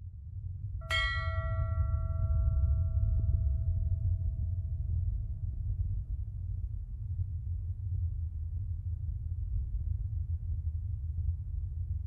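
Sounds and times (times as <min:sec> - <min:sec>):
bell-like chime: 0:00.8 - 0:04.1
deep rumbling drone: 0:00.9 - 0:11.9.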